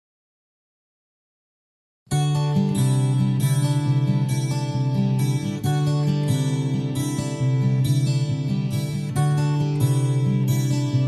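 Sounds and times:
acoustic guitar strumming chords: 2.1 - 11.0.

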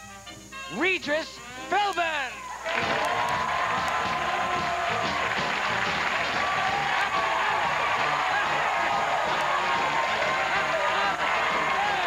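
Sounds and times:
audience applause and cheering: 2.3 - 12.0
band music: 2.7 - 12.0.

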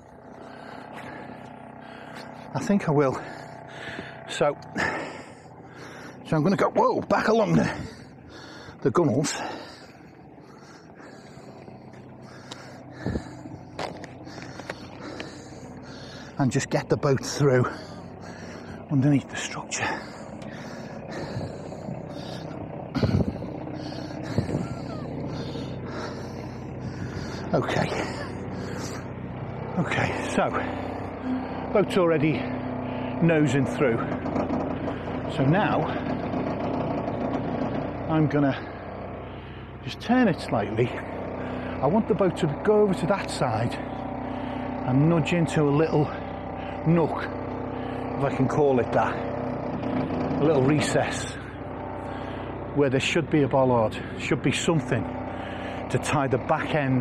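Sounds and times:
boat engine idling: 0.0 - 57.0.

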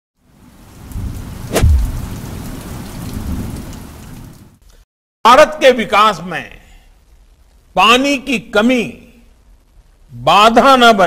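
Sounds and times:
steady rain: 0.2 - 11.0
thunderclap with low rumble: 0.8 - 3.7.

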